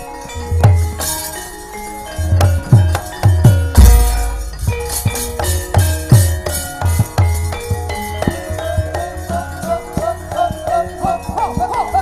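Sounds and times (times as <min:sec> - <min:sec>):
ringing bronze metallophone tones: 0:00.0 - 0:12.0
low hand-drum strokes: 0:02.4 - 0:08.9.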